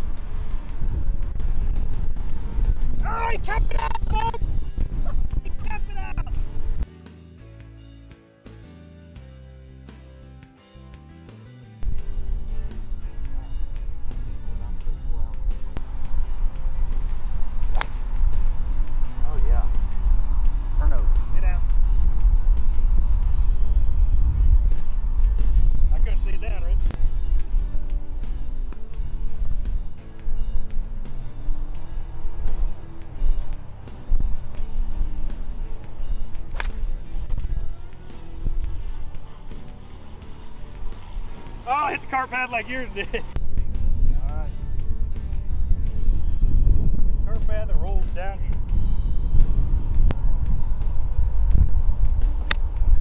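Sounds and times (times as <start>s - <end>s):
background music: 0.0s - 53.0s.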